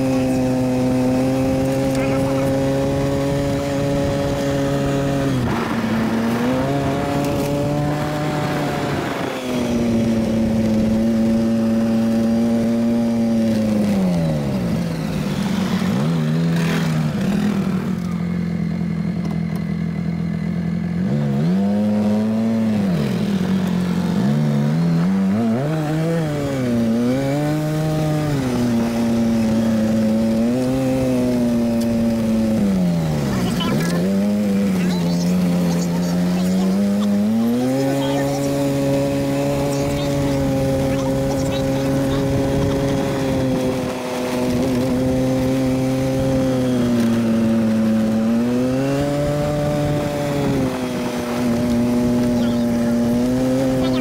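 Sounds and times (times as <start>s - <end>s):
off-road vehicle engine revving: 0.0s - 54.0s.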